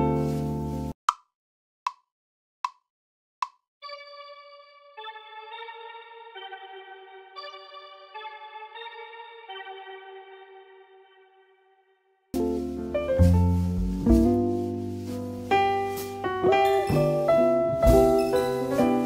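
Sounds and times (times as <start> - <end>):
metronome ticks: 1.9 - 3.6.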